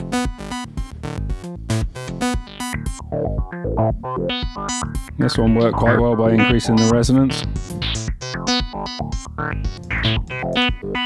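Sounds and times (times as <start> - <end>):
synth bass line: 0.0 - 11.0
kick drum: 0.2 - 10.9.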